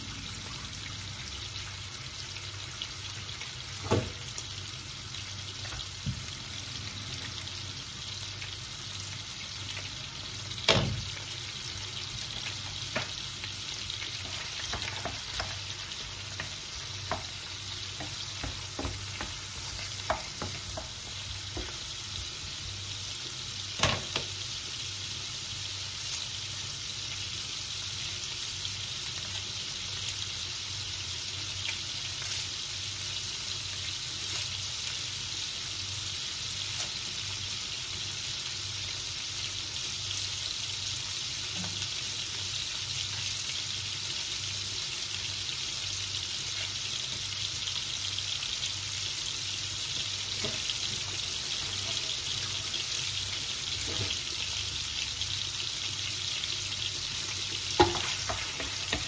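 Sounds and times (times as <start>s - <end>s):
meat sizzling in a frying pan: 0.0s - 59.0s.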